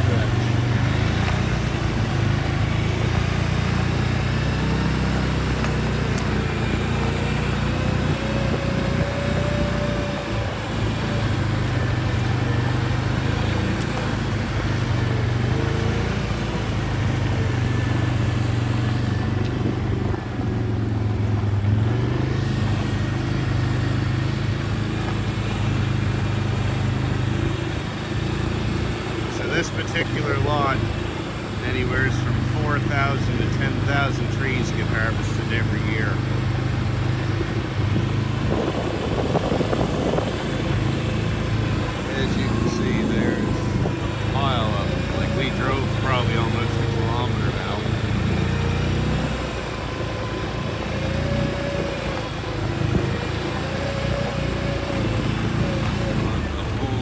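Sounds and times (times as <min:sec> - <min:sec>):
vehicle engine running: 0:00.0 - 0:57.0.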